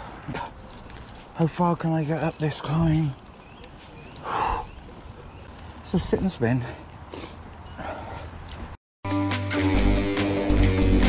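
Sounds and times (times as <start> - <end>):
person breathing hard: 4.2 - 4.8, 6.6 - 8.4.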